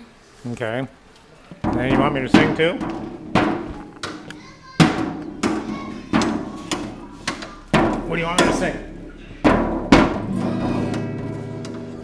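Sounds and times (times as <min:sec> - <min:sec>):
guitar strumming: 0:01.7 - 0:12.0.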